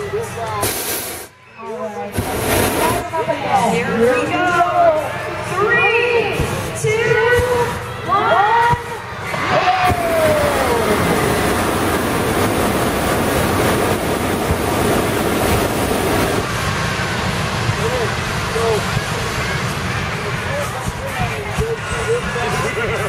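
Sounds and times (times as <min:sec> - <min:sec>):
people's voices: 0:00.0 - 0:15.2, 0:17.6 - 0:23.0
propane burner blast: 0:00.6 - 0:01.4, 0:02.1 - 0:03.4, 0:09.2 - 0:21.1.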